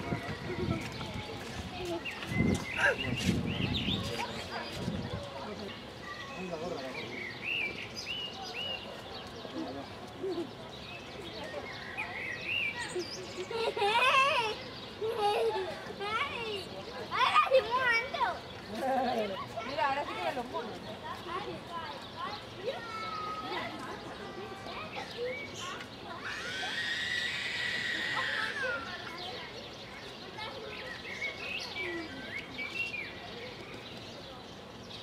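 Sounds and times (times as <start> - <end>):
chatter of voices: 0.0 - 35.0.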